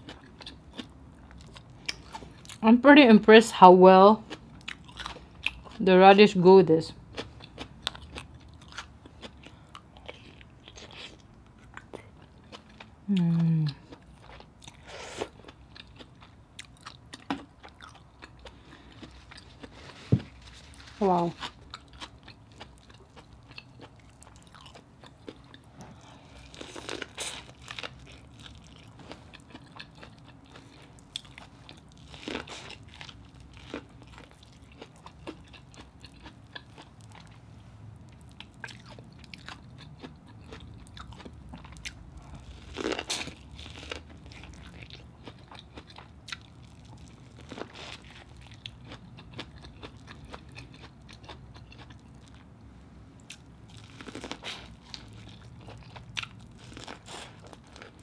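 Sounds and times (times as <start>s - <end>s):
person chewing corn on the cob: 0.0s - 2.6s, 4.2s - 5.8s, 7.0s - 58.0s.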